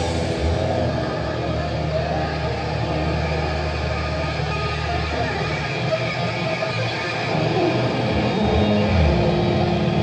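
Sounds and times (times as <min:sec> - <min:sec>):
distorted guitar and bass chord: 0:00.0 - 0:10.0
heavy metal band playing: 0:00.0 - 0:10.0.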